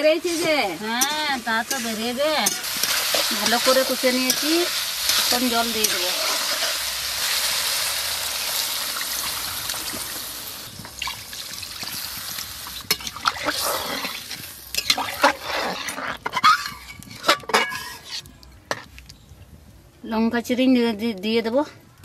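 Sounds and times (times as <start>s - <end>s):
food sizzling in a metal pan: 0.0s - 18.2s
metal ladle clinking against pan: 1.0s - 6.0s.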